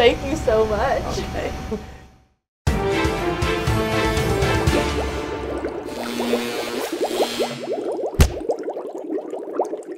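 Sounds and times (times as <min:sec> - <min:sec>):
rising bubbly blips: 0:04.4 - 0:09.9.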